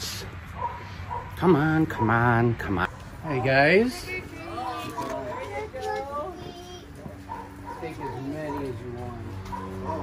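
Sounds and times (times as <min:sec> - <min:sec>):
dog barking: 0:00.6 - 0:02.3, 0:04.9 - 0:05.7, 0:07.2 - 0:10.0.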